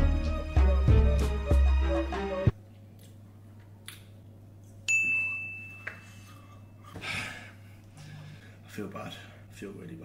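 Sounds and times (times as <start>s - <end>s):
bell-like ding: 4.9s - 6.3s.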